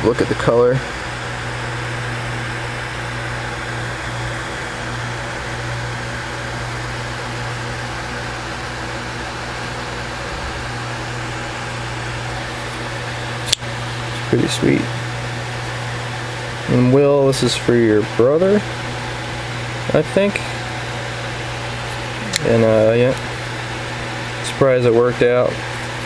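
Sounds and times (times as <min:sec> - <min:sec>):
steady machine hum: 0:00.0 - 0:26.0.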